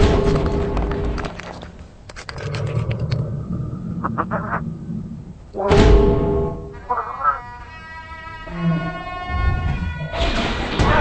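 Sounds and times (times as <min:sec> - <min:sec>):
low rumble: 0:00.0 - 0:06.8.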